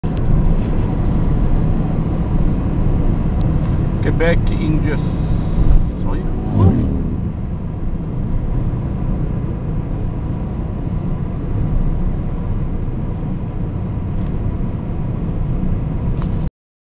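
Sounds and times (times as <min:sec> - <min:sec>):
car cabin engine and tyre rumble: 0:00.0 - 0:16.5.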